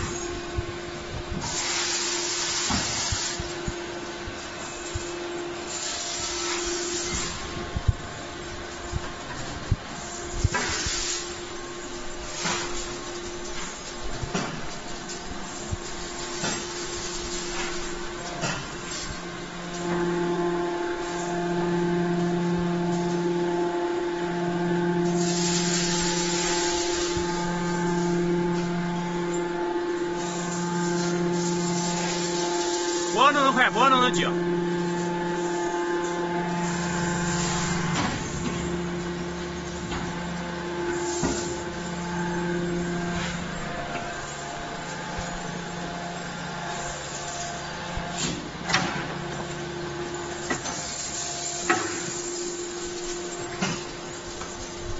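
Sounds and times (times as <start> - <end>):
low cycling hum: 0.0 - 53.4
hydraulic press humming: 0.0 - 54.9
loud hissing bursts: 1.4 - 3.5.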